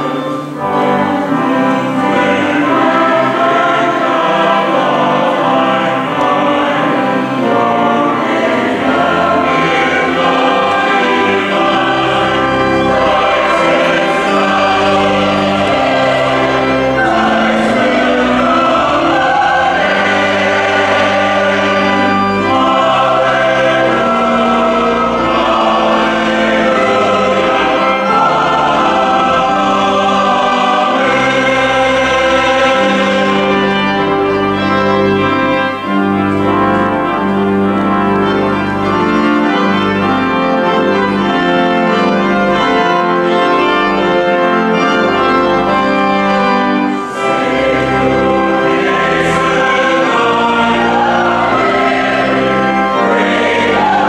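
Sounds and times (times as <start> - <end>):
choir singing in parts: 0.0 - 54.0.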